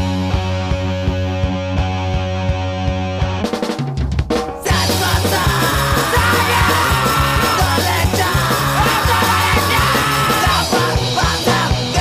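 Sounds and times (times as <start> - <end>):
hardcore punk band playing: 0.0 - 12.0
shouted vocals: 4.7 - 12.0.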